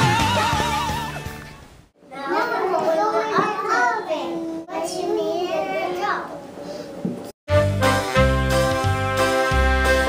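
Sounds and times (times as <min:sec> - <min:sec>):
children talking sing-song: 0:02.0 - 0:06.6.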